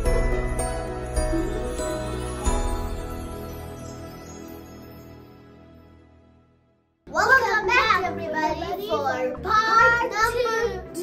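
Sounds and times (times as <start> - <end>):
background music with steady beat: 0.0 - 6.3.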